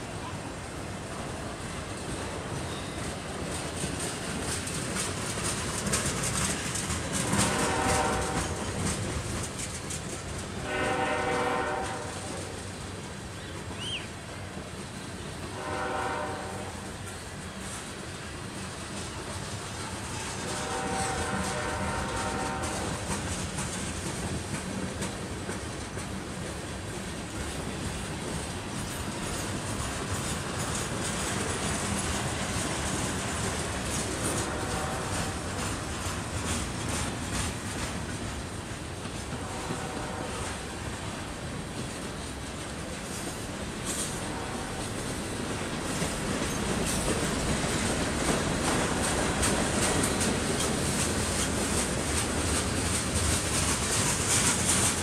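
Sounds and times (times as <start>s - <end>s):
train wheels clattering on rails: 0.0s - 55.0s.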